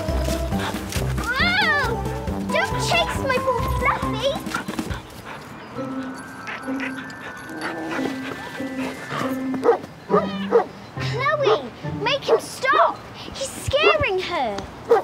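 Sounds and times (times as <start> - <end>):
light background music: 0.0 - 13.2.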